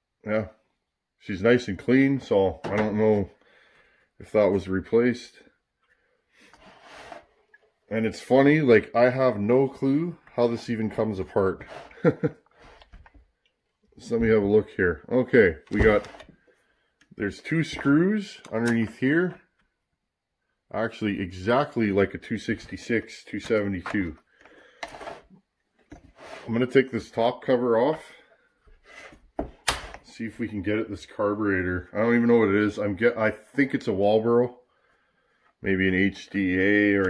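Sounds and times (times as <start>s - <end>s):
person speaking: 1.2s - 3.4s, 4.2s - 5.6s, 7.9s - 12.8s, 13.9s - 16.3s, 17.1s - 19.6s, 20.7s - 24.3s, 26.2s - 28.3s, 29.8s - 34.6s, 35.6s - 37.0s
chainsaw scraping on workbench: 24.8s - 25.3s, 26.1s - 26.6s.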